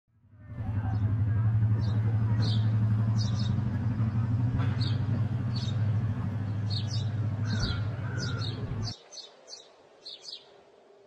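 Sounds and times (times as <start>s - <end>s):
low engine hum: 0.1s - 9.0s.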